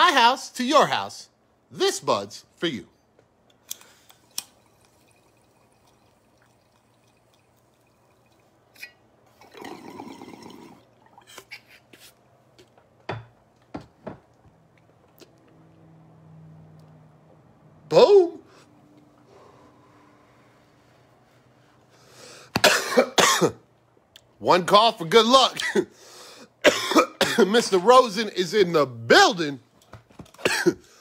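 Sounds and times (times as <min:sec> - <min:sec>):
water bong bubbling: 0:04.3 - 0:11.5.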